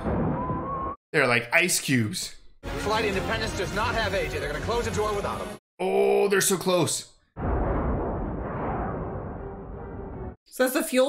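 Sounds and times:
dull rumbling explosion: 7.4s - 10.4s.

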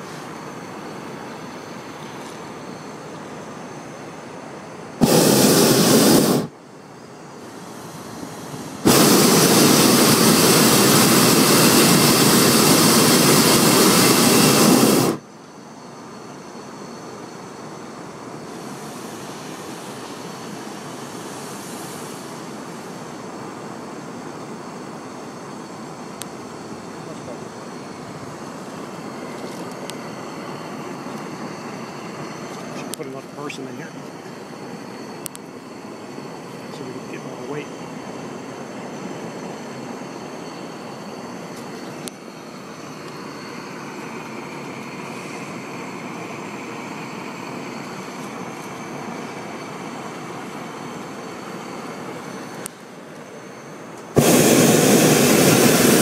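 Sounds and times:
propane burner blasting: 0.0s - 56.0s.

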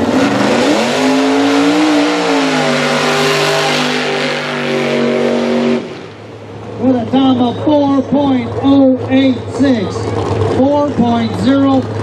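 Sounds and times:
truck engine revving: 0.0s - 12.0s.

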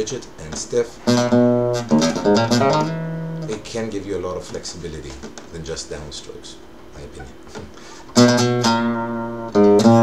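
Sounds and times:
nylon-string guitar strummed: 0.5s - 5.2s, 7.5s - 10.0s.

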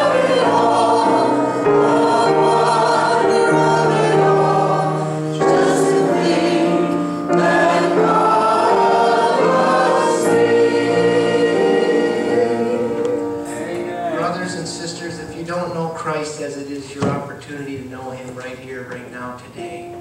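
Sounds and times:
congregation singing: 0.0s - 16.1s.

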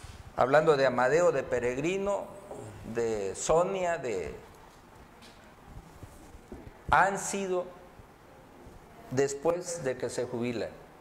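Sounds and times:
man speaking: 0.4s - 4.5s, 6.9s - 7.8s, 9.1s - 10.8s.

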